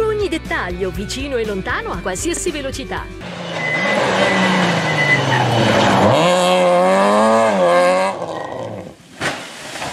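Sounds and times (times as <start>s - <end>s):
rally car engine revving: 3.2s - 9.0s.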